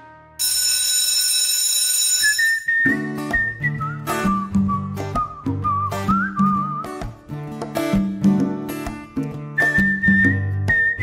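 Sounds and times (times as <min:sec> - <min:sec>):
whistled tune: 0:02.2 - 0:07.2, 0:09.5 - 0:11.0
plucked acoustic guitar: 0:02.8 - 0:11.0.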